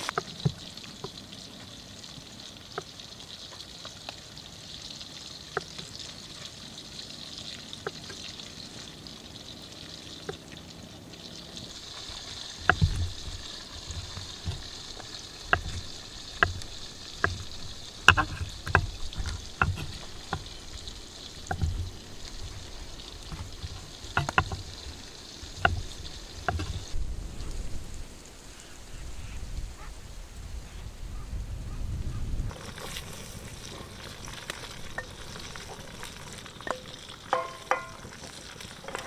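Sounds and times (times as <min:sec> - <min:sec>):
cauldron sizzling: 0:00.0 - 0:27.0, 0:32.5 - 0:39.0
knife knocking on wooden board: 0:12.6 - 0:20.5, 0:23.3 - 0:24.6, 0:25.6 - 0:26.8
metal clinks: 0:36.7 - 0:38.2.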